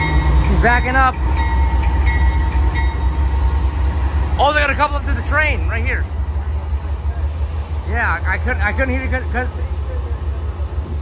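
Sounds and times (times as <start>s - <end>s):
locomotive engine drone: 0.0s - 11.0s.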